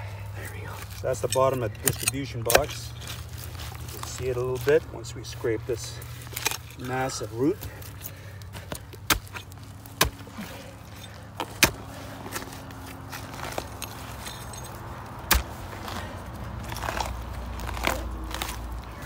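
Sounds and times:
hand tool scraping roots: 0:00.0 - 0:19.0.

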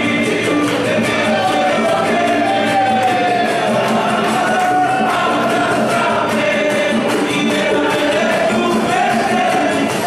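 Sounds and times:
congregation singing a hymn: 0:00.0 - 0:10.0
hand-clapping on the beat: 0:00.0 - 0:10.0
strummed guitars: 0:00.0 - 0:10.0.

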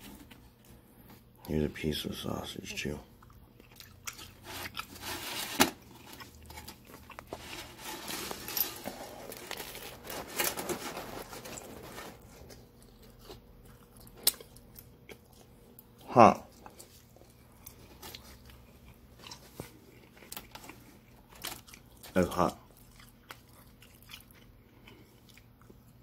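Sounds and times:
biting and chewing crunchy pizza: 0:03.1 - 0:26.0.

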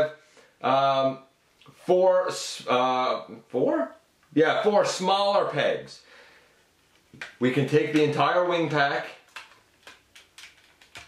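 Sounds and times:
plastic toy parts clicking: 0:09.3 - 0:11.0.

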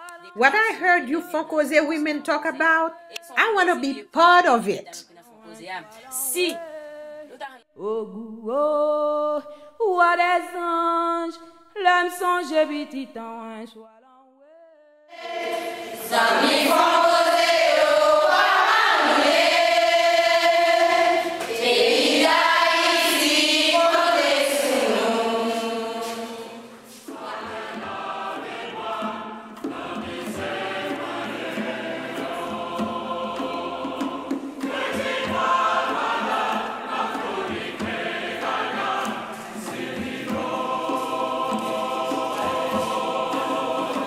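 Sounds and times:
choir singing a long chord: 0:15.1 - 0:44.0.

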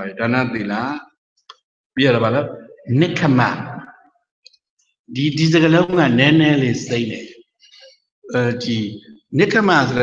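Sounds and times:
man speaking: 0:02.0 - 0:04.1, 0:05.1 - 0:10.0.

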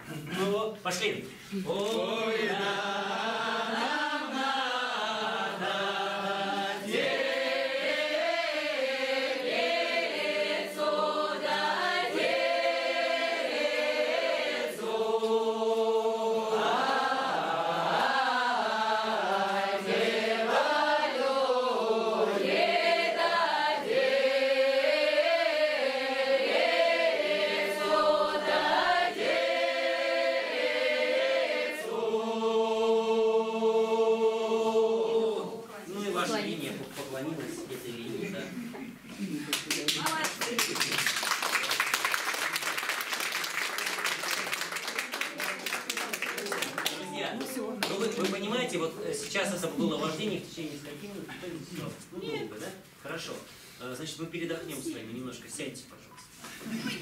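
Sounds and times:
mixed choir singing unaccompanied: 0:01.6 - 0:36.6.

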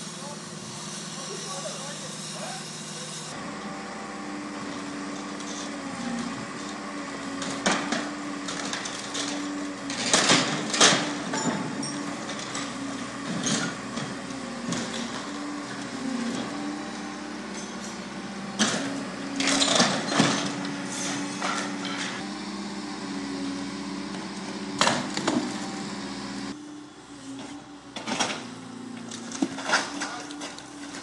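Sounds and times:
excavator engine running: 0:00.0 - 0:31.0.

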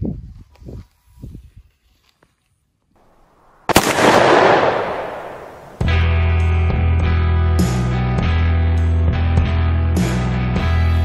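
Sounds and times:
loud blast bang: 0:03.7 - 0:06.1
rock music with guitar: 0:05.8 - 0:11.0.

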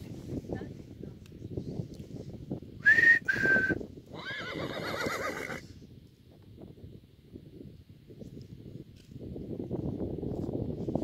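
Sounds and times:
horse whinnying: 0:04.1 - 0:05.7.

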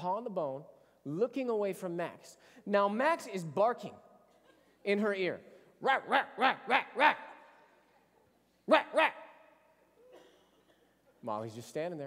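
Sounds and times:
man imitating dog bark: 0:05.8 - 0:07.5, 0:08.6 - 0:09.7.

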